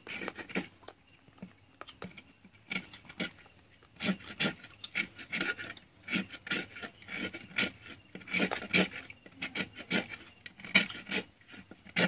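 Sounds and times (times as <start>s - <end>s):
knife scraping coconut shell: 0.0s - 0.9s, 2.0s - 12.0s.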